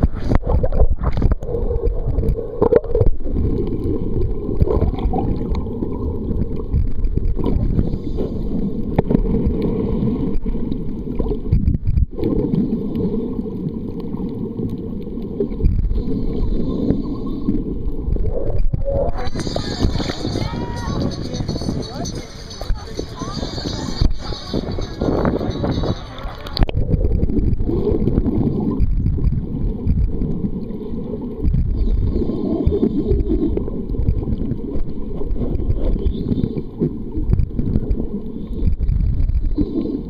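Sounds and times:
muffled underwater rumble: 0.0 - 40.0
water gurgling: 0.0 - 40.0.

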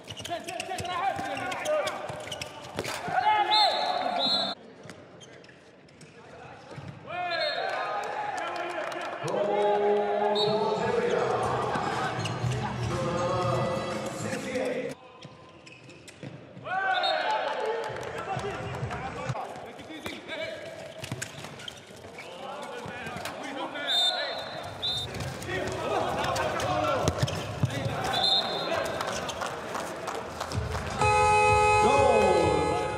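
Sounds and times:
ball bouncing on court: 25.0 - 28.2.

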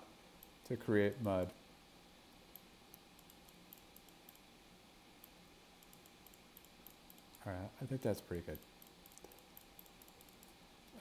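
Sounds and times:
computer mouse clicks: 2.5 - 4.5, 5.2 - 7.5, 8.5 - 11.0.

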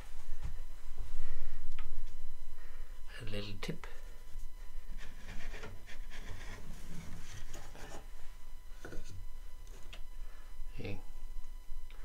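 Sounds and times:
wood scraping on wood: 4.9 - 8.1.

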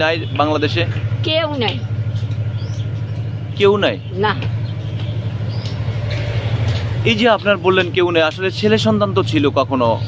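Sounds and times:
engine idling hum: 0.0 - 10.0.

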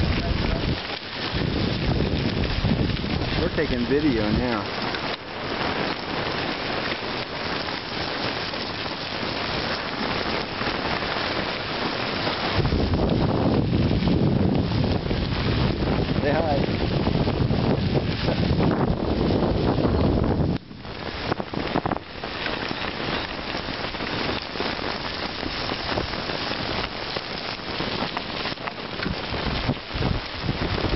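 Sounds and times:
bicycle tyres crunching on gravel: 0.0 - 30.9
wind buffeting microphone: 0.0 - 30.9.

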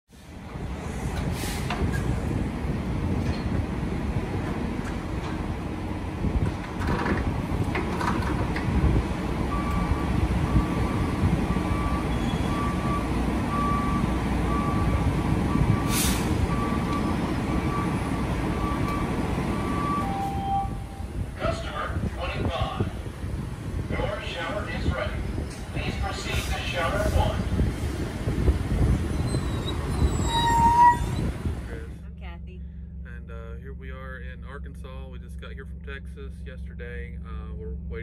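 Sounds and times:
diesel truck engines idling: 0.1 - 38.0
short air hiss: 15.9 - 16.3
single-pitch beeping: 18.6 - 21.1.

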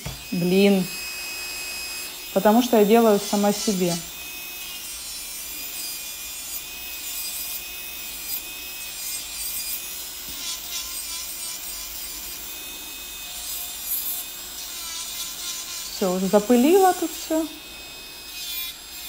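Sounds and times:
drill bit grinding acrylic: 0.0 - 19.0
electric nail drill whining: 0.0 - 19.0.

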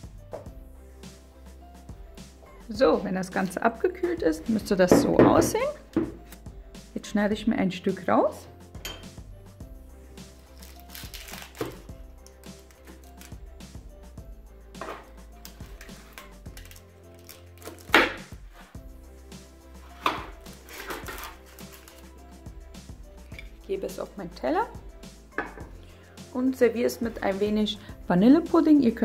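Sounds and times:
background music: 0.0 - 29.0
knife cutting through pastry: 20.0 - 22.0.

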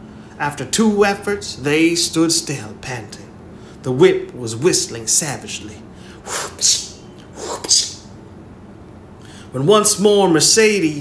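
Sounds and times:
man imitating whip swishes: 6.2 - 8.1.

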